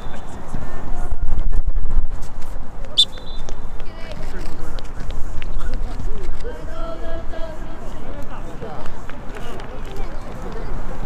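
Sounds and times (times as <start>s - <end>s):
children talking and calling out: 6.1s - 8.8s.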